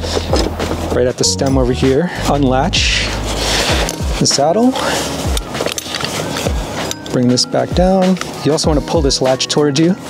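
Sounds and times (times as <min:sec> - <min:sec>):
background music with kick drum: 0:00.0 - 0:10.0.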